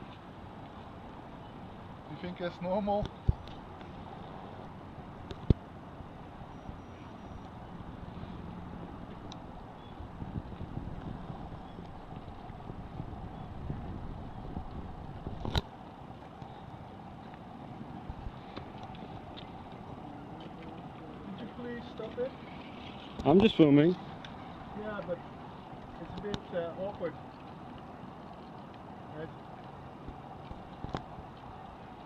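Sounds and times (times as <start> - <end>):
steady traffic noise: 0.0 - 32.0.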